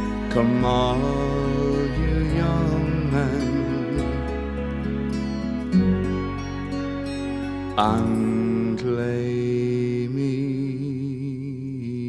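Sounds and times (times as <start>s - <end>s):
man singing held note: 7.8s - 12.0s.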